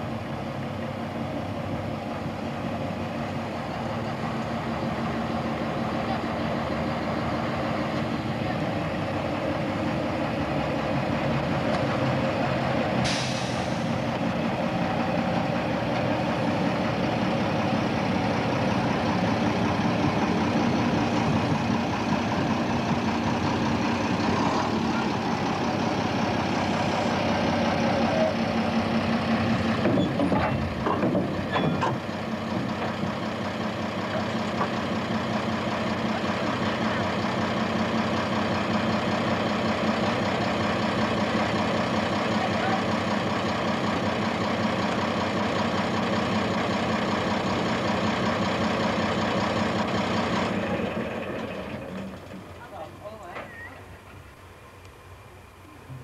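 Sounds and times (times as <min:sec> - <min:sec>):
diesel locomotive engine running: 0:00.0 - 0:56.0
short hiss: 0:13.0 - 0:14.0.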